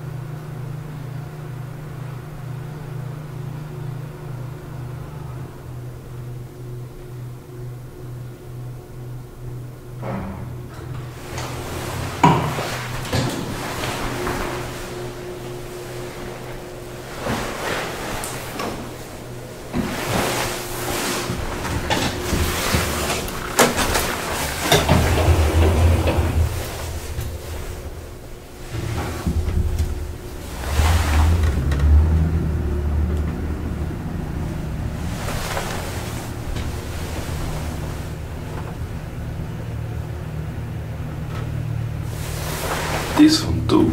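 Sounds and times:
elevator travelling hum: 0.0s - 43.9s
elevator door clicks and knocks: 10.0s - 14.4s, 21.6s - 30.5s.

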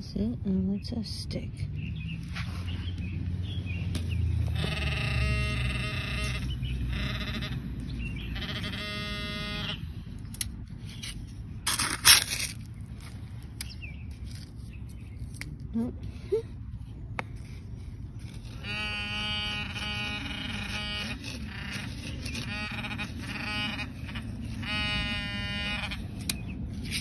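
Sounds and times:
metal detector buzzing alert tone: 4.4s - 10.1s, 18.2s - 26.5s.

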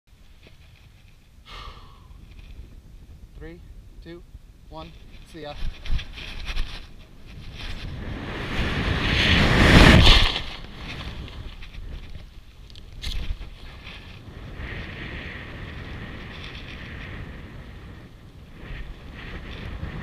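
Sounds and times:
wind rushing over microphone: 0.2s - 20.0s.

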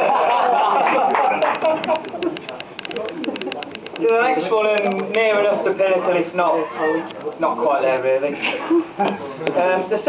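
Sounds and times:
people clapping: 0.5s - 3.6s.

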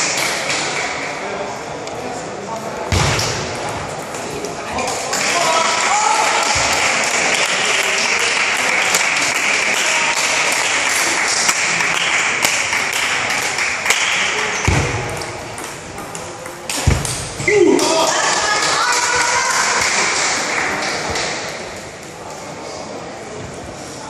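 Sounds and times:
low thumps: 14.6s - 15.5s, 16.8s - 17.5s.

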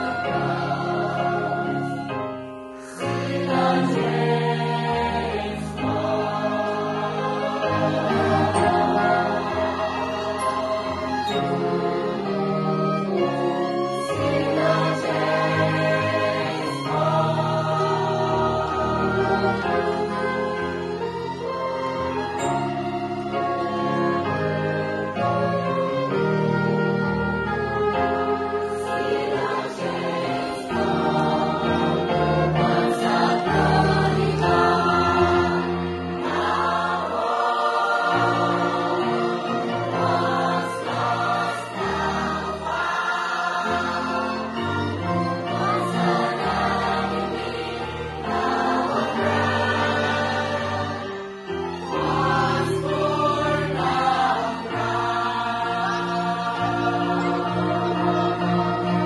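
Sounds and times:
choir singing a hymn: 0.0s - 59.0s
small orchestra playing: 0.0s - 59.0s.

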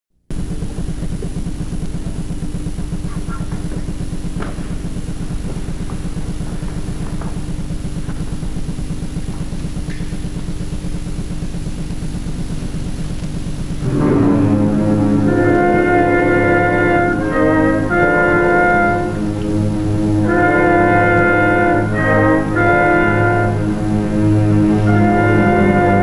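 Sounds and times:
electrical hum and buzz: 0.2s - 26.0s
tape hiss: 0.3s - 26.0s.

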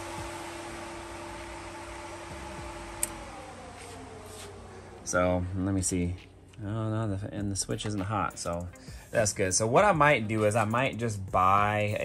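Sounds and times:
electric fan humming: 0.0s - 12.0s
switch clicking off: 3.0s - 3.3s.

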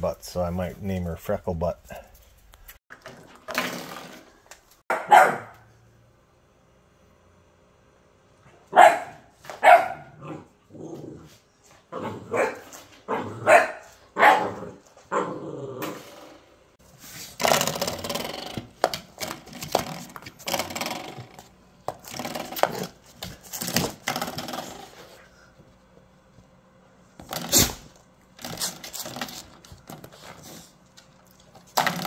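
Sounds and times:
dog barking: 4.9s - 5.7s, 8.7s - 10.4s, 12.0s - 15.3s.

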